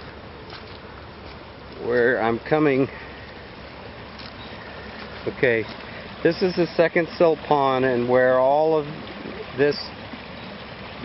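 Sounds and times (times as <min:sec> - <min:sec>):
steady rushing outdoor noise: 0:00.0 - 0:11.0.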